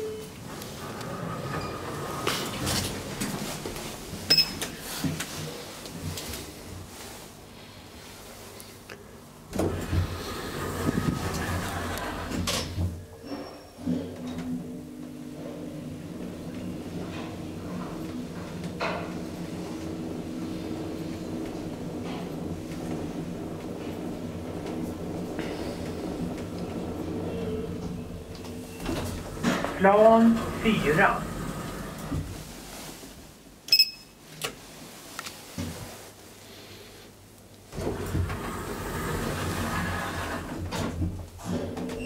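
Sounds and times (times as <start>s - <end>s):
elevator doors closing: 0.0s - 5.4s, 9.4s - 32.8s, 37.7s - 42.0s
elevator travelling hum: 0.0s - 33.9s, 37.2s - 42.0s.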